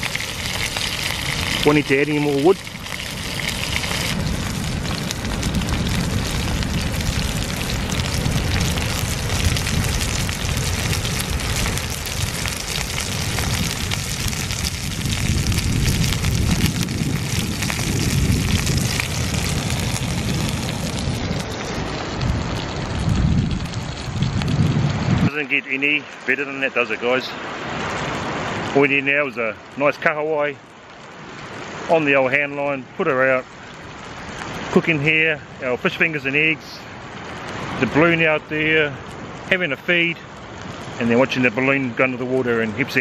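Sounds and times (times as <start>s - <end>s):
food sizzling in a frying pan: 0.0s - 24.8s.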